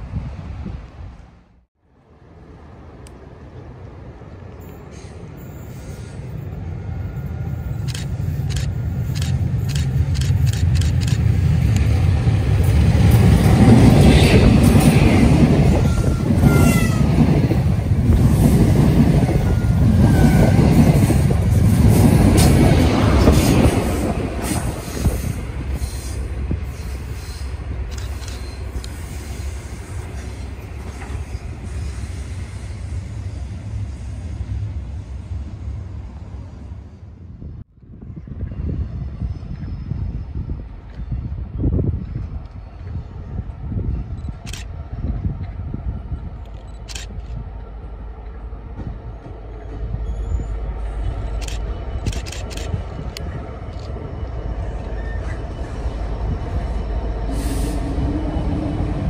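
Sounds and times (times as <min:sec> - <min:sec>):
diesel train passing: 0:00.0 - 0:59.0
wheels rumbling on rails: 0:00.0 - 0:59.0.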